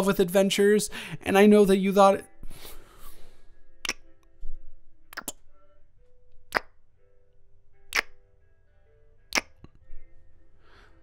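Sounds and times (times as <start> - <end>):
quiet background music: 0.0 - 11.0
soft breath: 2.4 - 3.8, 10.4 - 11.0
wet kissing smacks: 3.8 - 4.1, 5.1 - 5.4, 6.5 - 6.8, 7.9 - 8.2, 9.3 - 9.7.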